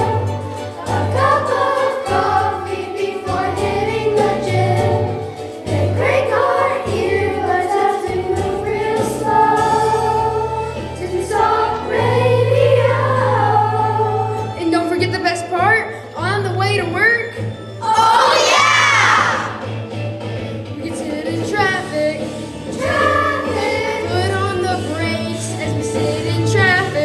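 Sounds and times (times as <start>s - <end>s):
children's choir singing: 0.0s - 14.6s, 17.8s - 19.7s, 20.8s - 27.0s
instrumental accompaniment: 0.0s - 27.0s.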